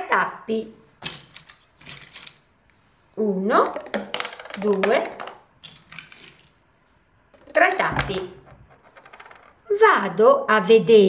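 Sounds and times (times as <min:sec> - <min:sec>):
plastic bottle caps rattling: 0:01.0 - 0:02.4, 0:03.7 - 0:06.6, 0:07.4 - 0:09.6.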